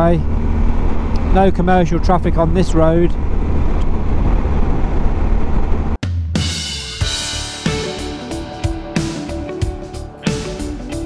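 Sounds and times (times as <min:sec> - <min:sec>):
motorcycle wind and running noise: 0:00.0 - 0:06.0
music with drums: 0:06.0 - 0:11.0.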